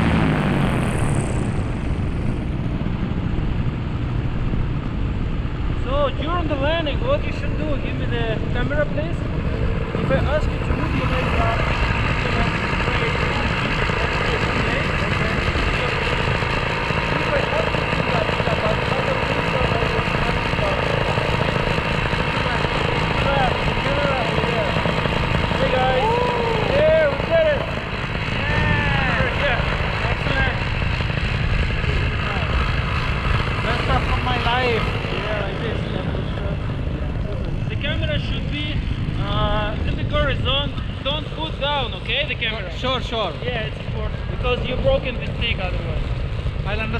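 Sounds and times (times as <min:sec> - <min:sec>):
paramotor engine and propeller drone: 0:00.0 - 0:46.9.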